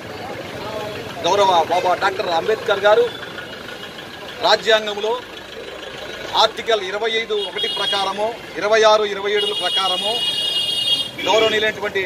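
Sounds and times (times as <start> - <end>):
street traffic noise: 0.0 - 12.0
vehicle engine idling: 0.0 - 12.0
man speaking: 11.2 - 12.0.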